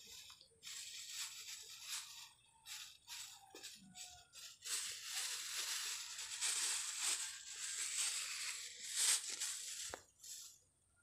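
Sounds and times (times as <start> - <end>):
plastic bag crinkling: 0.0 - 10.7.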